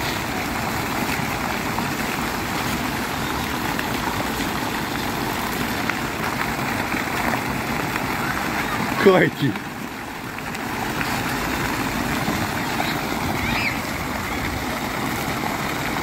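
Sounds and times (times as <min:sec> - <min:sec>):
fountain water splashing: 0:00.0 - 0:16.0.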